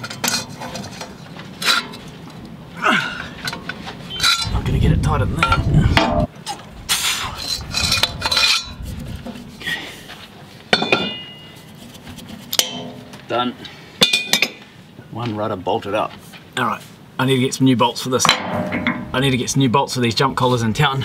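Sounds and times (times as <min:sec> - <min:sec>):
low rumble: 0:04.4 - 0:09.6.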